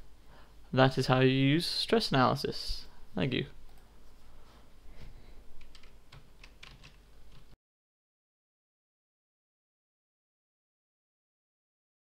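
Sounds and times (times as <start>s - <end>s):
keyboard keys clicking: 5.6s - 7.5s.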